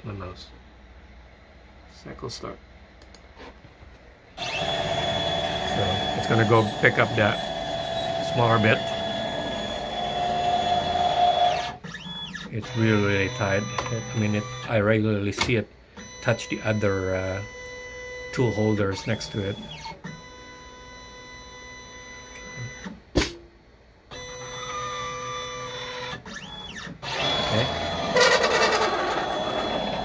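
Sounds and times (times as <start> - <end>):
motor whine: 4.4 - 11.8, 26.6 - 30.0.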